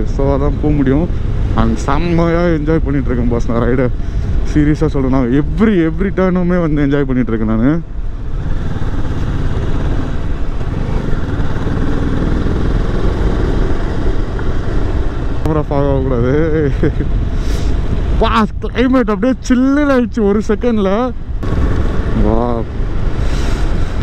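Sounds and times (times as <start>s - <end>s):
motorcycle engine running: 8.1s - 15.4s, 21.4s - 24.0s.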